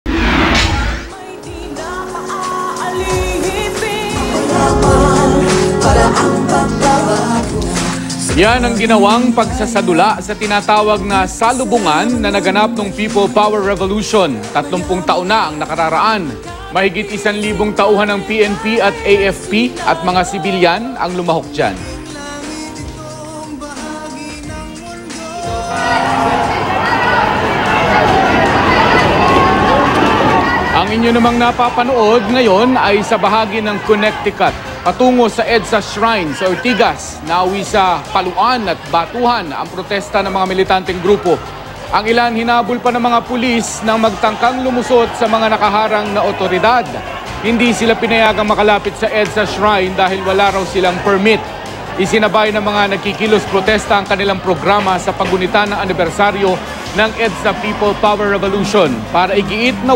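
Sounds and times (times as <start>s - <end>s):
jostling crowd commotion: 0.2s - 59.9s
person singing: 1.0s - 26.6s
held instrumental tones: 1.1s - 15.7s
crowd shouting: 25.4s - 59.9s.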